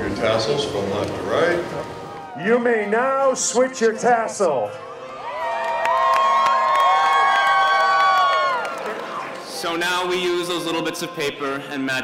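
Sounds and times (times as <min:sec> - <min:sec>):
crowd cheering and whooping: 0:01.8 - 0:02.5, 0:04.8 - 0:09.5.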